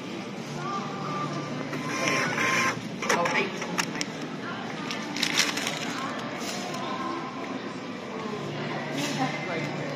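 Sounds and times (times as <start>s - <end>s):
receipt printer printing: 1.7s - 3.6s.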